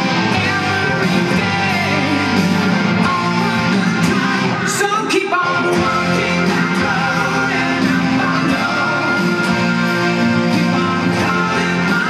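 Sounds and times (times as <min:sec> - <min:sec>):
electric guitar: 0:00.0 - 0:12.0
hard rock song: 0:00.0 - 0:12.0.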